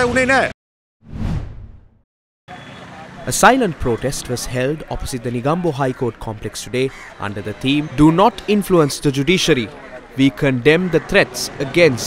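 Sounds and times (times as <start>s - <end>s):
outdoor background noise: 2.5s - 12.0s.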